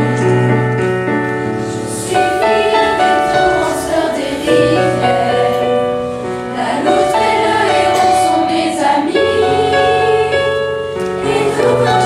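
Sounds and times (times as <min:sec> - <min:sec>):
choir singing in harmony: 0:01.6 - 0:12.0.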